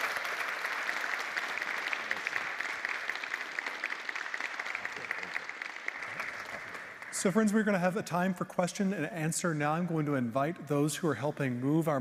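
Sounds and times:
audience applauding: 0.0 - 7.7.

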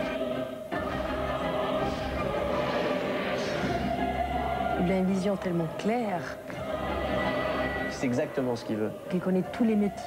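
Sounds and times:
choir singing long notes: 0.0 - 10.0.

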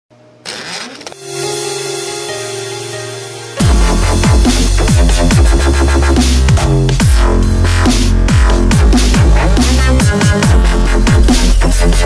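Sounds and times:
held low synth notes: 1.2 - 11.3.

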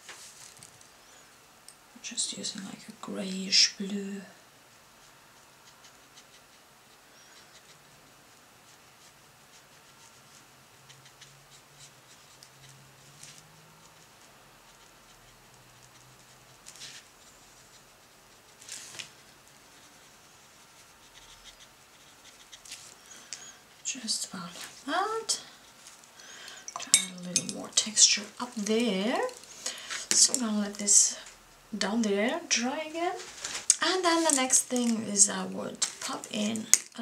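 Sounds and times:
brush scratching on paper: 4.6 - 23.2.

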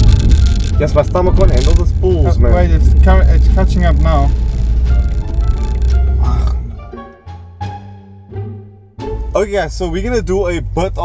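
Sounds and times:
car engine drone inside cabin: 0.0 - 6.8.

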